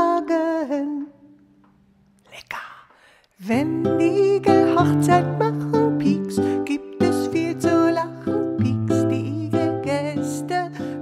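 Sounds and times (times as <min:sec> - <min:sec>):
person singing children's song: 0:03.4 - 0:11.0.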